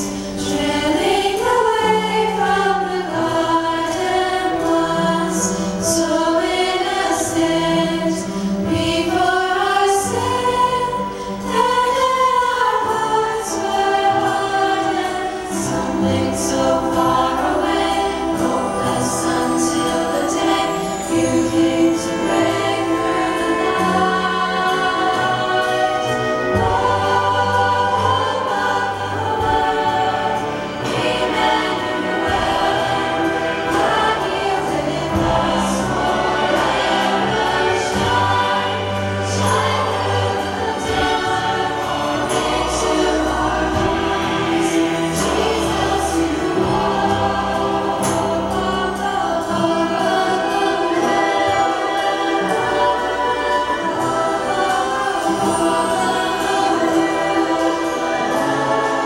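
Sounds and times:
choir singing: 0:00.0 - 0:59.0
orchestral accompaniment: 0:00.0 - 0:59.0.

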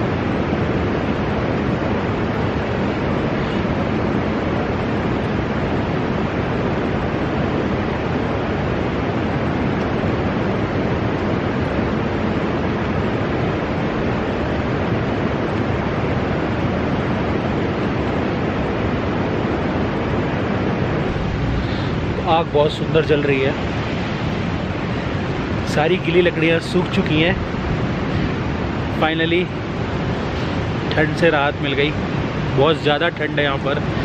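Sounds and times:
steady rushing noise: 0:00.0 - 0:34.0.

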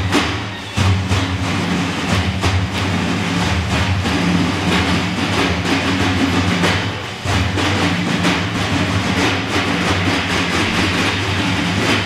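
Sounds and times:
frame drums rolling: 0:00.0 - 0:12.0.

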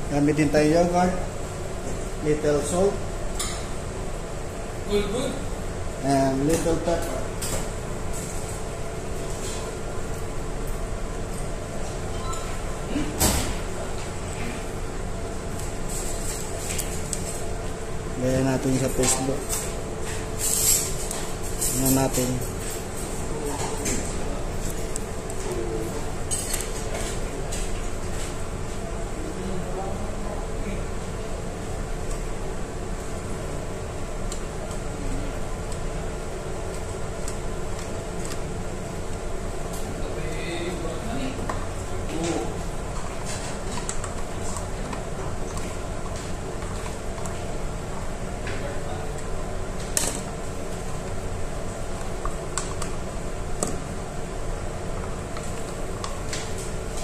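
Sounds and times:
steady background hum: 0:00.0 - 0:57.0.

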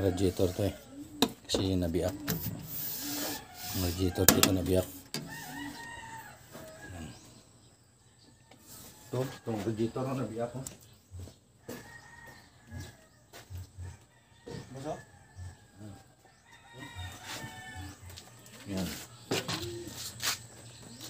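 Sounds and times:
rooster crowing: 0:05.2 - 0:07.3, 0:11.6 - 0:13.1, 0:13.9 - 0:20.0.

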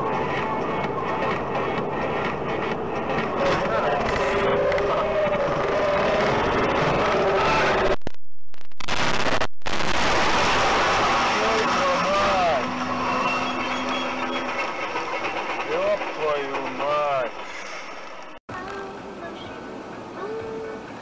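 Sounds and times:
loud crash noise: 0:08.9 - 0:14.0.

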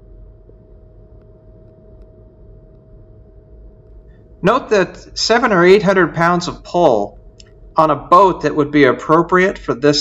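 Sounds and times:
constant mid-pitched tone: 0:00.0 - 0:10.0
low mechanical hum: 0:00.0 - 0:10.0.

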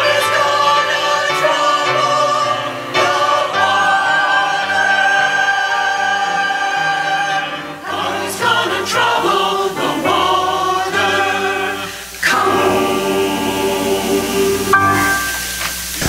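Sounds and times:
church choir singing in parts: 0:00.0 - 0:16.0.

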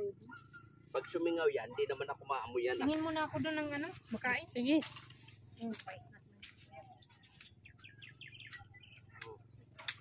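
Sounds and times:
faint bird chirps: 0:06.9 - 0:09.5.

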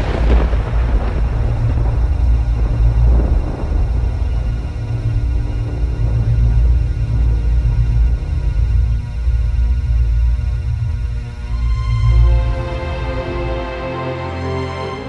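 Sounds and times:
deep pulsing drone: 0:00.0 - 0:15.0
noisy swell: 0:00.0 - 0:15.0
ominous background music: 0:00.0 - 0:15.0.

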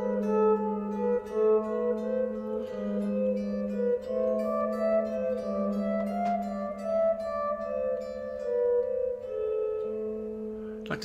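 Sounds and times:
electric guitar melody: 0:00.0 - 0:11.0.

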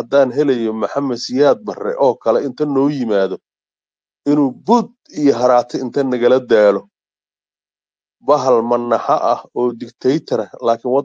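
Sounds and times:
person talking: 0:00.0 - 0:03.4, 0:04.3 - 0:06.8, 0:08.3 - 0:11.0.

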